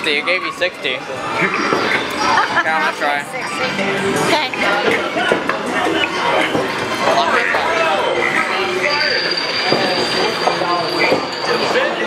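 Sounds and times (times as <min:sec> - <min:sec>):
busy arcade din: 0:00.0 - 0:12.0.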